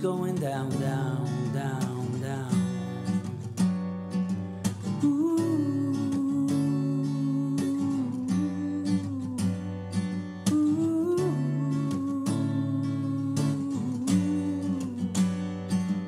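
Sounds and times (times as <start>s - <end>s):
acoustic guitar strummed: 0.0s - 16.0s.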